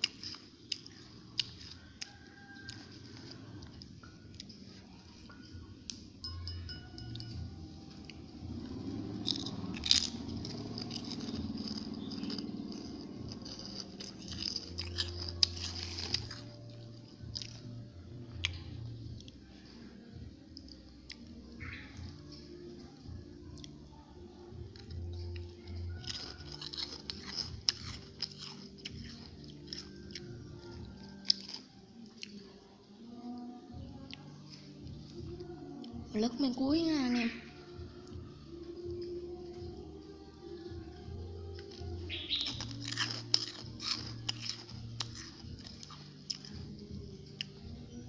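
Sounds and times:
chewing crisp chips: 0.0s - 36.0s, 37.6s - 48.0s
sharp crunches: 42.3s - 46.5s.

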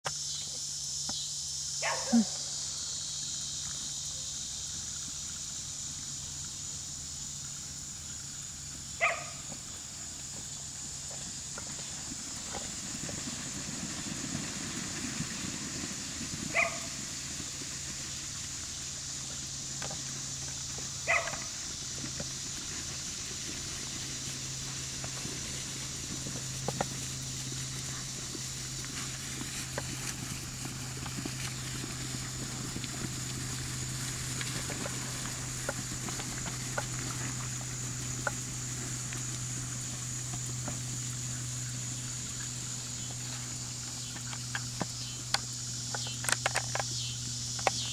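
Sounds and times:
dog barks: 1.8s - 2.4s, 9.0s - 9.4s, 16.5s - 16.9s, 21.0s - 21.5s
low engine hum: 1.8s - 47.9s.

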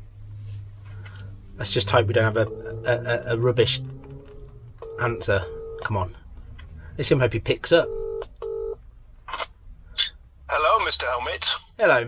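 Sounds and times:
telephone ringback tone: 7.9s - 8.8s.

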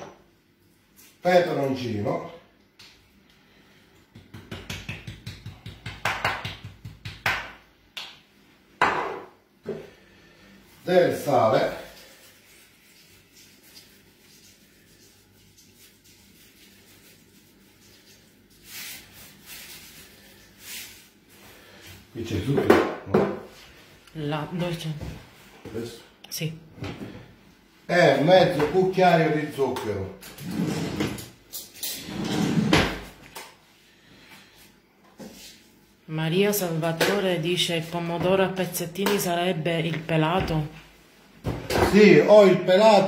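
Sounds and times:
salt sprinkled into a pot: 11.8s - 21.3s.

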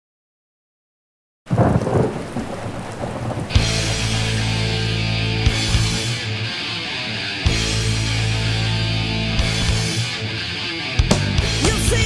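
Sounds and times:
rain: 1.5s - 6.2s
thunder rumbling: 1.5s - 6.2s
distorted guitar and bass chord: 3.6s - 12.0s.

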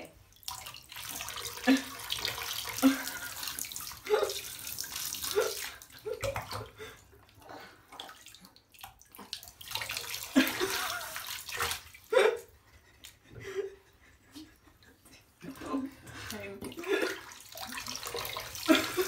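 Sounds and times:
water splashing in bathtub: 0.0s - 13.6s, 14.8s - 19.0s.

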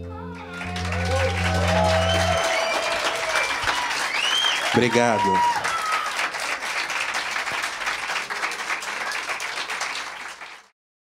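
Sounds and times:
band playing low chord: 0.0s - 3.9s
audience applauding and cheering: 0.0s - 10.7s.

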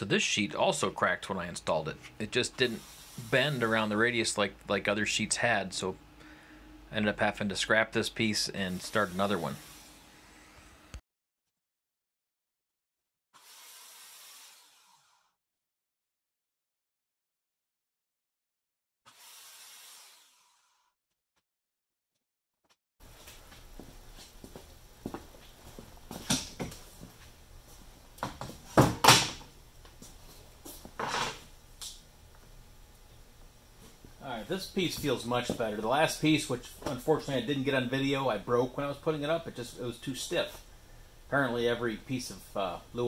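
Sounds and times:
faint hiss: 2.6s - 3.9s.

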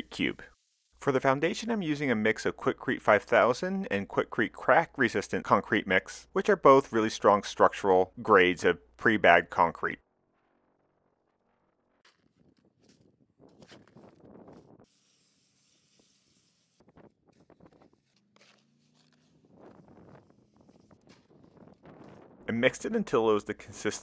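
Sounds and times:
water spraying from hose: 0.0s - 1.5s, 14.8s - 17.0s.

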